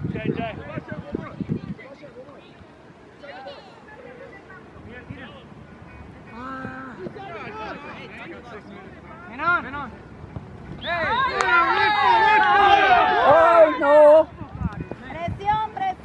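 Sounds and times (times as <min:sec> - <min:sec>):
distant people shouting: 0:10.8 - 0:14.3.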